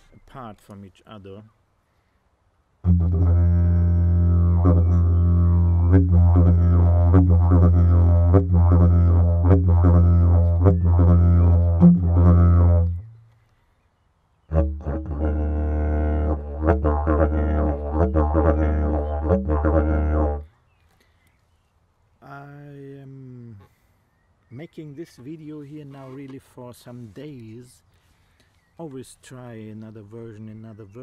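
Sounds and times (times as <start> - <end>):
didgeridoo low drone: 2.8 - 13.2, 14.5 - 20.4.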